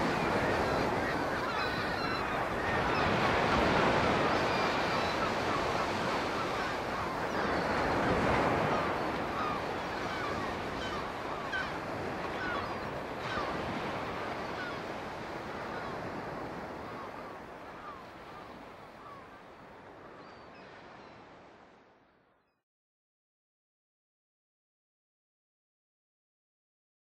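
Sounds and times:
churned sea water rushing: 0.0s - 19.4s
faint bird calls: 0.1s - 21.3s.

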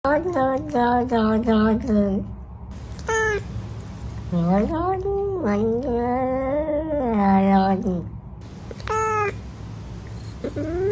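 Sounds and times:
cat meowing: 2.8s - 4.4s, 8.6s - 10.9s.

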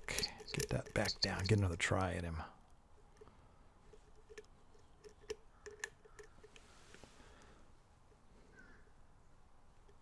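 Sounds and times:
lock pick clicking in lock: 4.2s - 6.4s.

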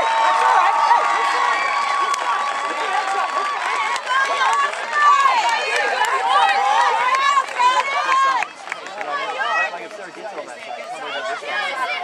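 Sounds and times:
scattered shouts: 0.0s - 9.8s
crowd cheering and shouting: 0.0s - 12.0s.

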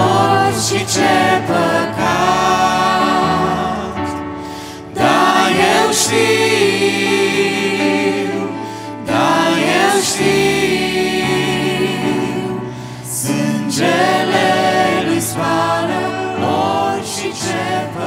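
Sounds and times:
group singing hymn in harmony: 0.0s - 18.0s
held keyboard chords: 0.0s - 18.0s.

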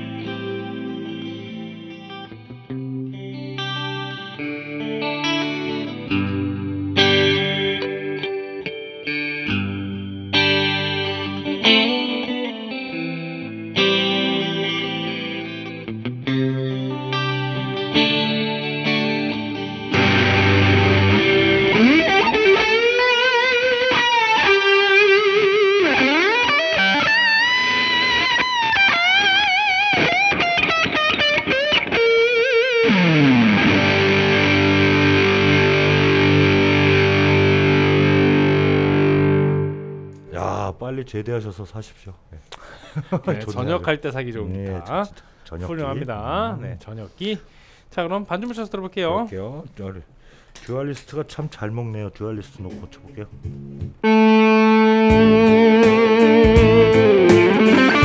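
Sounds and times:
distorted electric guitar lead: 0.0s - 40.3s, 52.6s - 58.0s
electric guitar strummed chords: 0.0s - 40.3s, 52.6s - 58.0s.

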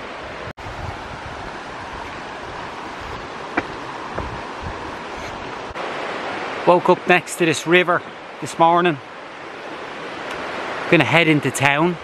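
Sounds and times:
steady rushing noise: 0.6s - 6.8s.

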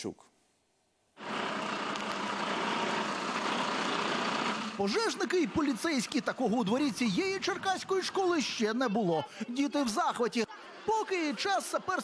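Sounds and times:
diesel engine idling: 1.2s - 8.4s.

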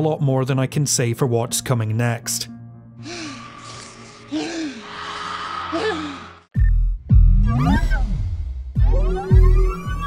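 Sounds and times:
person gasping and groaning: 3.0s - 6.5s
electronic music: 6.6s - 10.0s.

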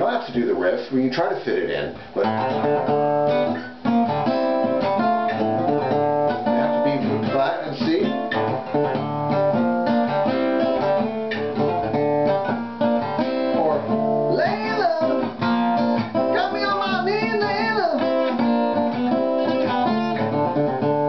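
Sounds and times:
acoustic guitar picking and strumming: 0.0s - 21.0s.

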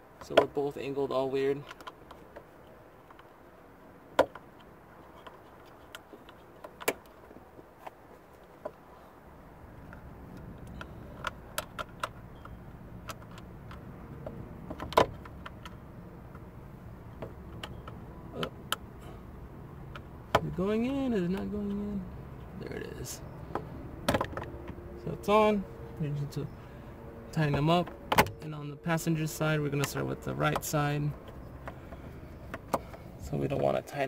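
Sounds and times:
low steady rumble: 0.0s - 34.0s.

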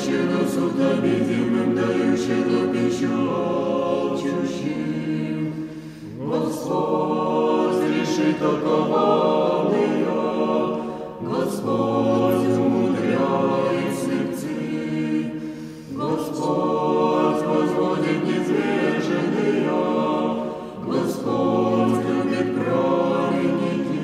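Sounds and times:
choir chanting a cappella: 0.0s - 24.0s.

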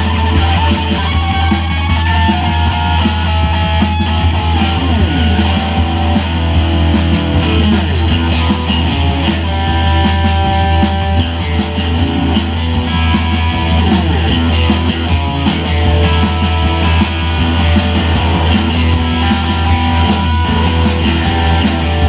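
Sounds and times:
bass guitar: 0.0s - 22.0s
drums with cymbal hits: 0.0s - 22.0s
electric guitar sliding notes: 0.0s - 22.0s.

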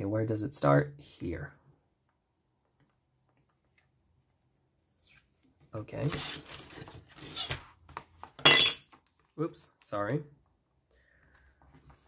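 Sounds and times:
tape roll handling noises: 6.0s - 8.4s.

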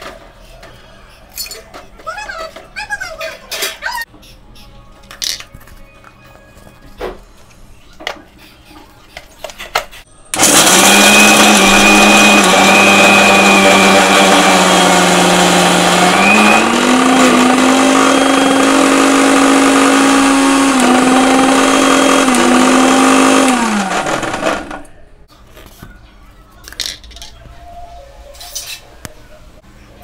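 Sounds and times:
mixer grinder grinding nuts: 10.3s - 24.9s.

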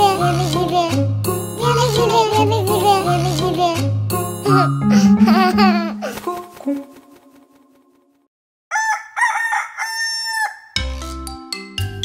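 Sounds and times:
xylophone music: 4.2s - 6.1s
rooster crowing: 8.7s - 10.8s.

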